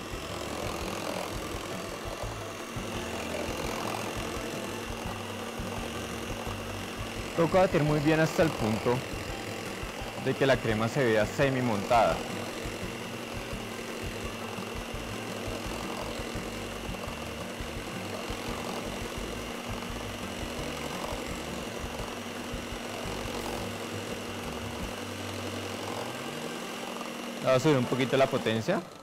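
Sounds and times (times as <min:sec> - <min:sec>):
stand mixer whipping in metal bowl: 0:00.0 - 0:29.0.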